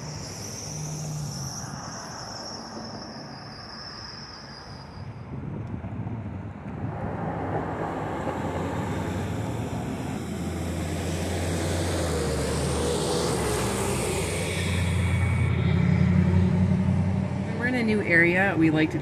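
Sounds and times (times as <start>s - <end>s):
vehicle engine humming: 0.0s - 4.3s, 5.4s - 19.0s.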